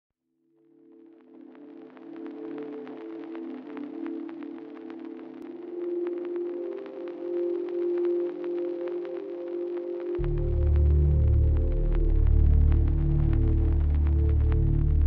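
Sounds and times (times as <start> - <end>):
faint crackling clicks: 1.3 - 15.0
low sustained chords: 6.6 - 15.0.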